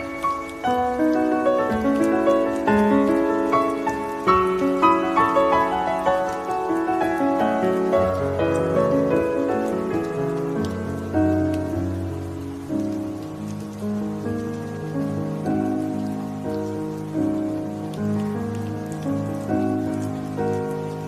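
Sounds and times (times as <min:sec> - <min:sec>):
rain hiss: 0:00.0 - 0:21.0
slow solo piano: 0:00.0 - 0:21.0.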